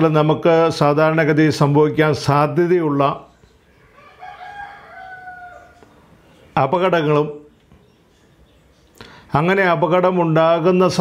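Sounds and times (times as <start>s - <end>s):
voice: 0.0s - 3.3s, 6.6s - 7.5s, 9.3s - 11.0s
rooster crowing: 3.8s - 6.0s.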